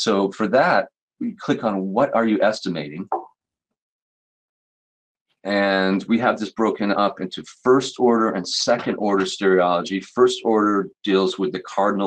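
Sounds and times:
person speaking: 0.0 - 3.3, 5.5 - 12.0.

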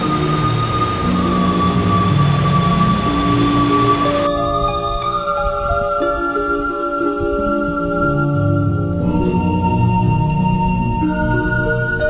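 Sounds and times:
whitewater rapids rushing: 0.0 - 10.2
slow background music: 0.0 - 12.0.

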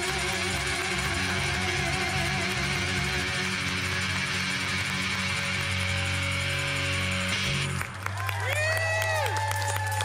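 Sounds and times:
rock band playing: 0.0 - 8.5.

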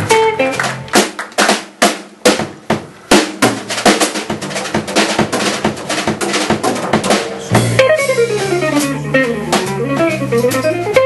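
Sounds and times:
snare and tom strikes: 0.0 - 10.6.

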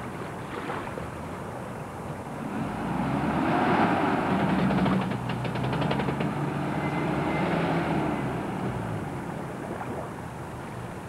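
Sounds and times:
car engine passing close by: 2.4 - 9.3.

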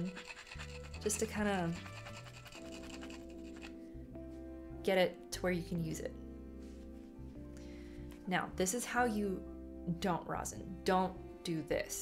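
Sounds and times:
screw scratching rosin: 0.0 - 3.8
soft background music: 0.0 - 12.0.

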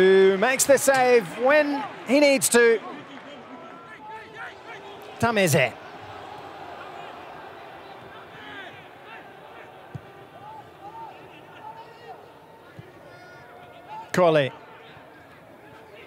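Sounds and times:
distant players shouting: 3.4 - 15.0.

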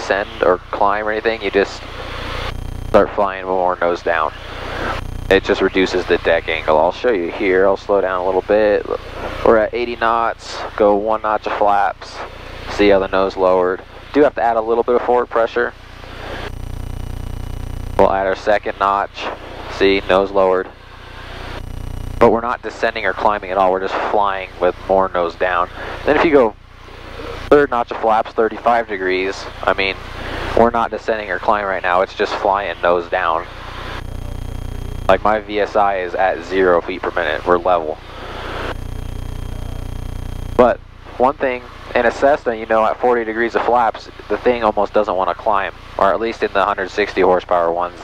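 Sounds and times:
propeller plane engine drone: 0.0 - 21.7, 22.7 - 27.6, 28.5 - 42.2
intercom hiss: 0.0 - 48.0.

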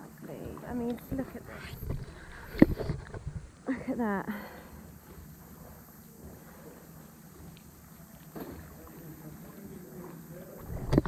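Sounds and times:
water lapping and sloshing: 0.0 - 11.0.

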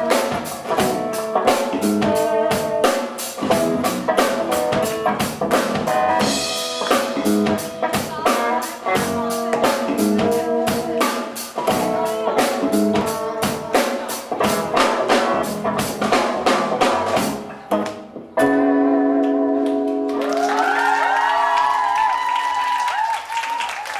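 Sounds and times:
live band playing: 0.0 - 23.9
audience cheering: 20.1 - 23.9.

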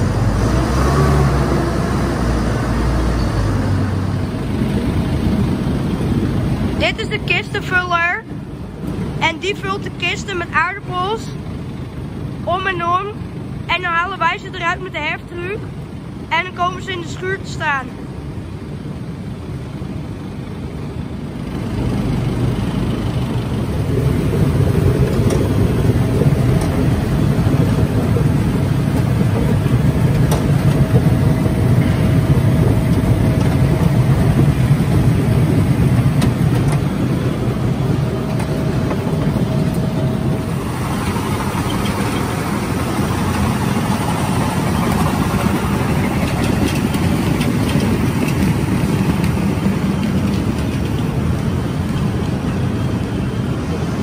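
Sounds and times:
conveyor machinery rumbling: 0.0 - 54.0.

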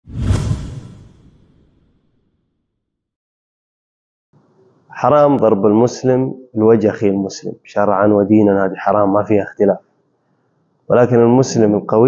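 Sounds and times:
whoosh with deep boom: 0.0 - 2.2.

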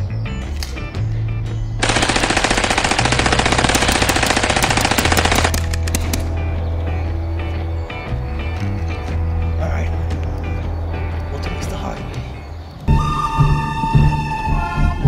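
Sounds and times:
background music: 0.0 - 15.0
machine gun burst: 1.8 - 6.0.

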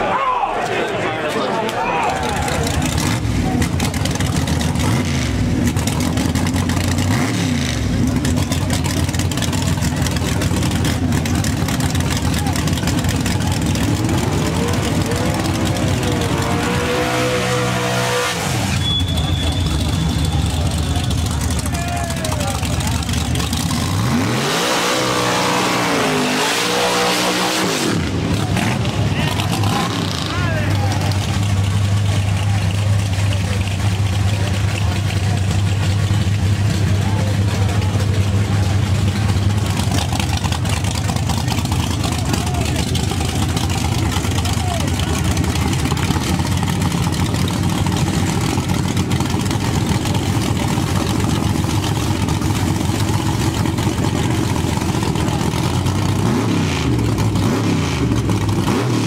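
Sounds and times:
crowd voices: 0.0 - 59.0
drag car engine revving: 1.7 - 59.0.

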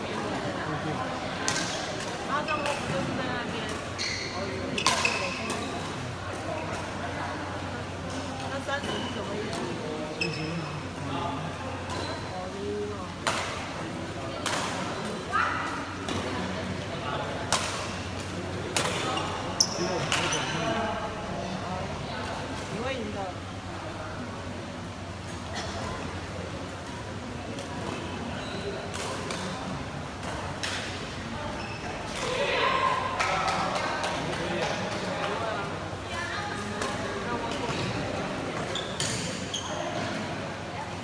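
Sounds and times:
shoes squeaking on court floor: 1.7 - 3.0, 3.8 - 6.8, 8.8 - 10.9, 19.0 - 20.7, 27.9 - 28.9, 31.5 - 32.2, 37.4 - 40.3.

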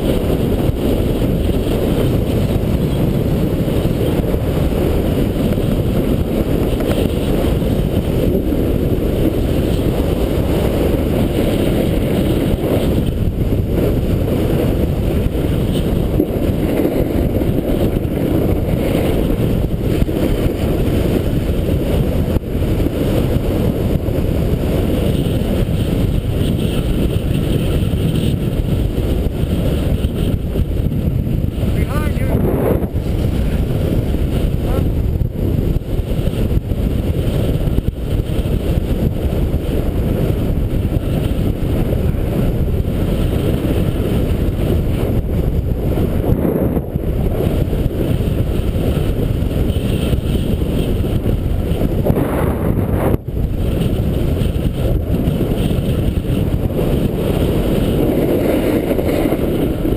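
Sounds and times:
wind rumble on microphone: 0.0 - 59.9.

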